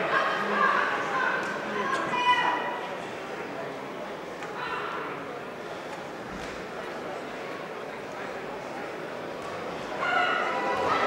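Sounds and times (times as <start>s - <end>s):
people shouting at boxing match: 9.9s - 11.0s.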